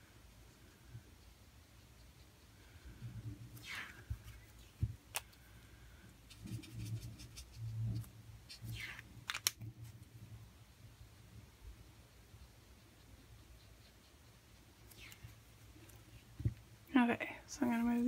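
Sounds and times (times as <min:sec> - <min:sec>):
brush swishing on paper: 0:03.4 - 0:05.1, 0:06.2 - 0:09.1, 0:14.6 - 0:16.6
pen clicks: 0:08.9 - 0:09.6.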